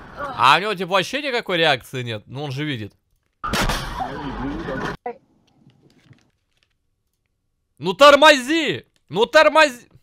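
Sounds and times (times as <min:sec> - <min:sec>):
car crash: 0:03.4 - 0:05.0.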